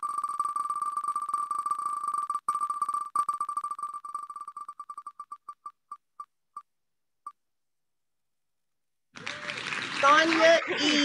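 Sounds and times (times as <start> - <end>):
name-picker wheel ticking: 0.0 - 5.8.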